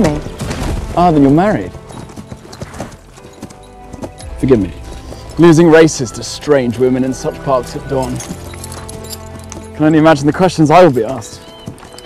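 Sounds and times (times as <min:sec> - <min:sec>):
background music: 0:00.0 - 0:12.0
horse hooves clopping: 0:00.0 - 0:12.0.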